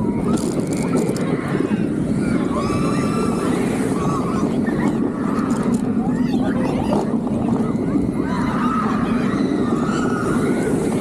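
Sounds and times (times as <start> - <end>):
riders screaming and shouting: 0.0 - 11.0
roller coaster wheels roaring on track: 0.0 - 11.0
wind: 0.0 - 11.0.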